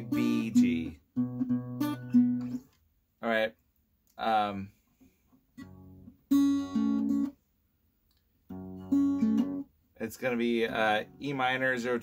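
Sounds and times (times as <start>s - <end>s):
fingerpicked acoustic guitar: 0.0s - 2.8s, 4.9s - 7.4s, 8.4s - 12.0s.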